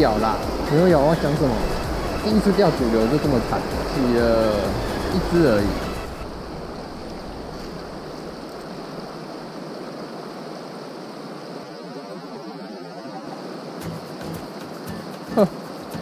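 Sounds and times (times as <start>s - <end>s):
background music: 0.0s - 6.2s
river rushing over rocks: 0.0s - 16.0s.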